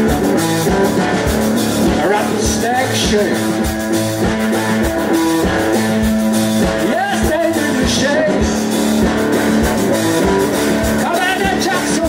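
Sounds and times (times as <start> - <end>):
drum kit hits: 0.0 - 12.0
electric bass: 0.0 - 12.0
electric guitar long notes: 0.0 - 12.0.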